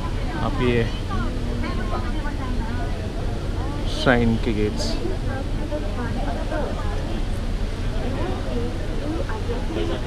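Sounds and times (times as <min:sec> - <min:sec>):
low rumble of ship: 0:00.0 - 0:10.0
passengers chatter: 0:00.0 - 0:10.0.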